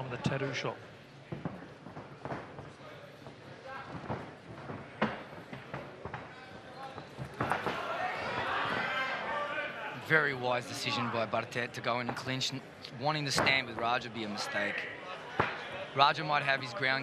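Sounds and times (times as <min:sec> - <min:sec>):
crowd shouting: 0:07.5 - 0:10.0.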